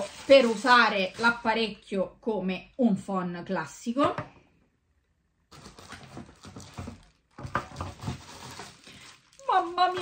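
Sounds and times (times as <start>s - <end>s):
packaging rustling and crinkling: 0.0s - 1.8s, 5.5s - 10.0s.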